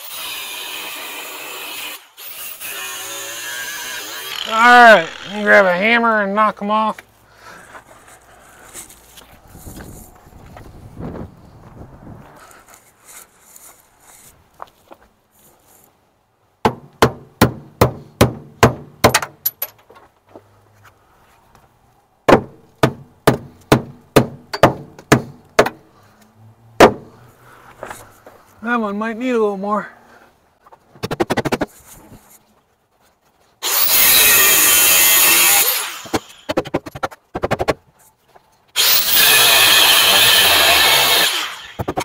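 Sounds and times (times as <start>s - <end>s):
hammer blows on metal bolts: 16.7s - 19.8s, 22.3s - 25.8s.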